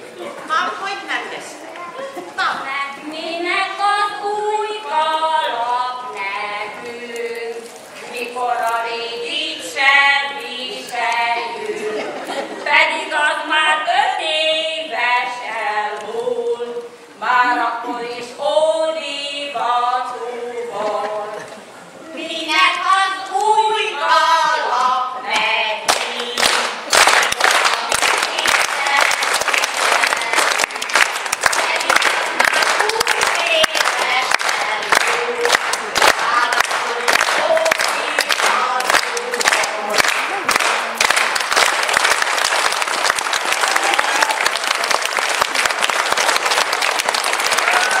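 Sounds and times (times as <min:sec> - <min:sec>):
women singing together: 0:02.4 - 0:41.5
audience applauding: 0:25.9 - 0:48.0.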